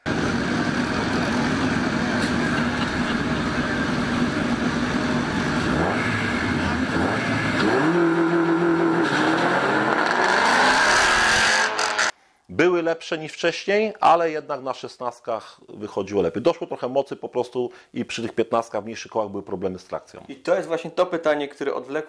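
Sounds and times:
car engines revving: 0.0 - 12.1
cars launching: 0.1 - 12.1.

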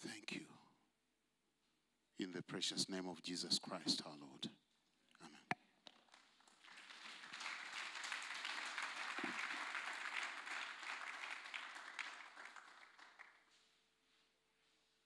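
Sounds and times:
congregation applauding: 6.0 - 13.5.

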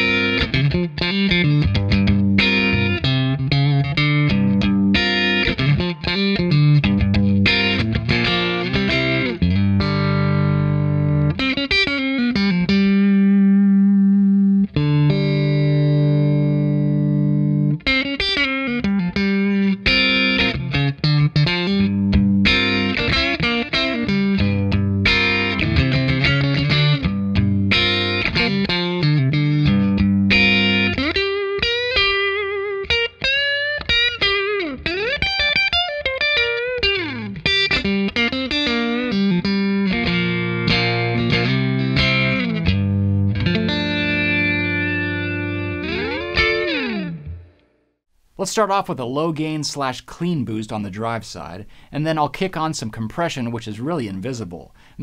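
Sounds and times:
clean electric guitar: 0.0 - 47.8.

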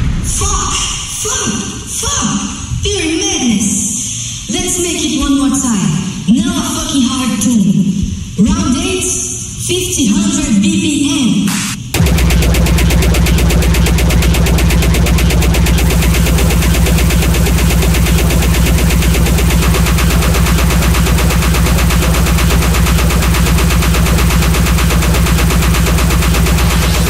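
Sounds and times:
extremely fast distorted kick drums: 11.5 - 27.0.

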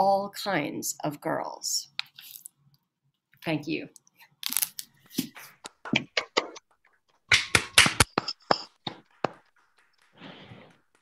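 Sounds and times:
person clapping: 7.3 - 9.4.

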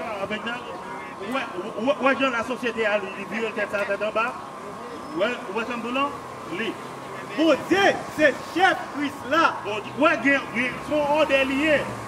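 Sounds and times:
faint steady whine: 0.0 - 11.2.

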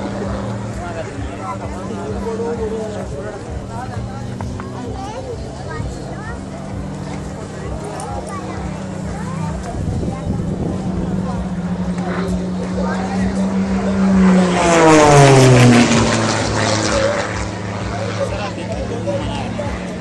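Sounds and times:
faint crowd voices: 0.0 - 20.0
propeller plane engine droning: 0.0 - 20.0.

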